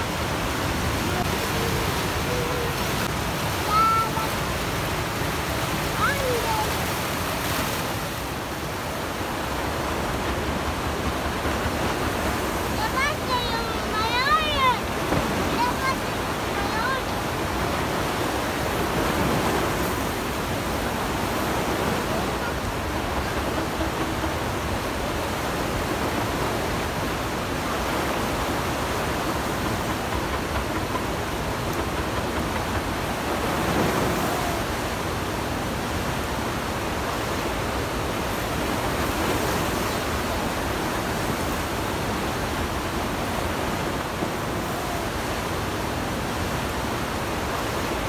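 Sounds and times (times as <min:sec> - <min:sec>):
fast river rushing: 0:00.0 - 0:48.0.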